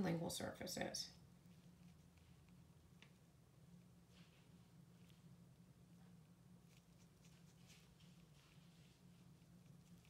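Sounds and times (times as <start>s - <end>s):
faint low hum: 0.0s - 10.0s
brush scratching: 1.3s - 10.0s.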